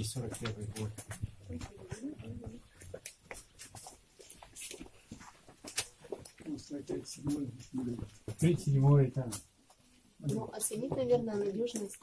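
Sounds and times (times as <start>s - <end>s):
light clicks and scuffs: 0.0s - 11.1s.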